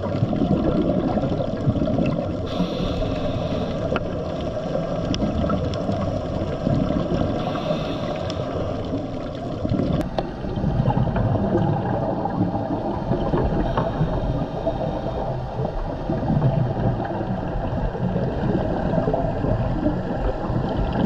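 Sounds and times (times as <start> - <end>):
diver's exhaled bubbles: 0.0 - 21.0
underwater rushing and gurgling: 0.0 - 21.0.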